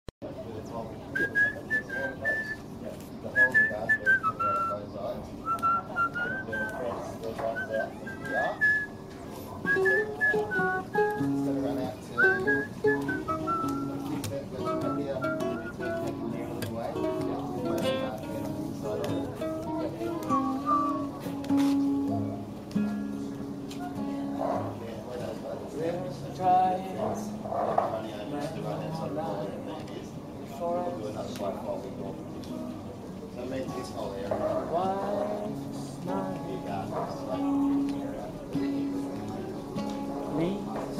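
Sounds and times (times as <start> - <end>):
person whistling a tune: 1.2 - 2.6, 3.4 - 4.8, 5.4 - 6.8, 7.5 - 8.9, 9.7 - 11.2, 12.2 - 16.0
plucked acoustic guitar: 5.4 - 29.7, 31.2 - 40.9.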